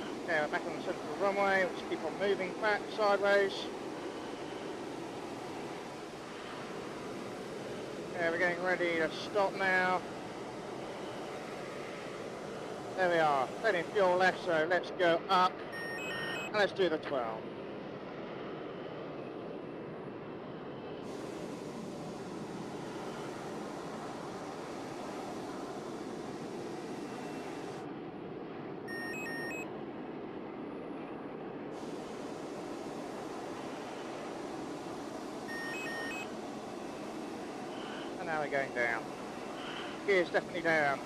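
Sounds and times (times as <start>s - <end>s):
jet engine rushing: 0.0s - 41.0s
short electronic beeps: 15.7s - 16.5s, 28.9s - 29.6s, 35.5s - 36.3s.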